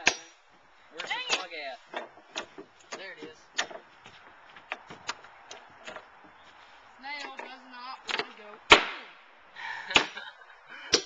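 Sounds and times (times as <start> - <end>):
sharp loud cracks: 8.1 - 9.2.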